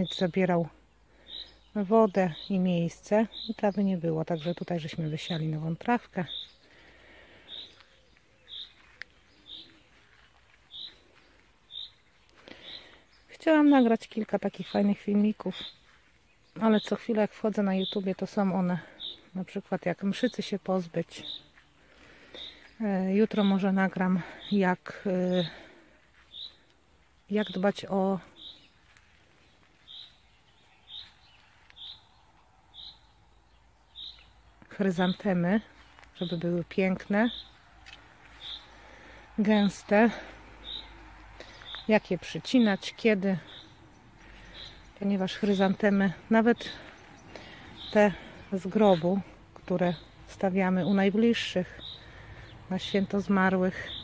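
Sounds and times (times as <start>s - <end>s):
outdoor background noise: 0.0s - 54.0s.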